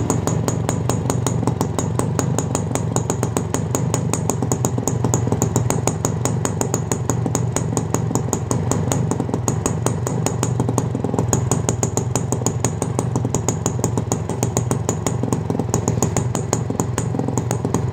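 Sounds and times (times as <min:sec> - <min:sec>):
motorcycle engine idling: 0:00.0 - 0:17.9.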